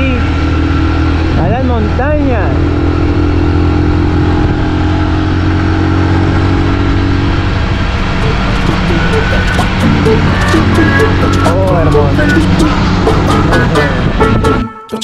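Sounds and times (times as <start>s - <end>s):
motorcycle engine cruising: 0.0s - 14.8s
background music: 8.0s - 15.0s.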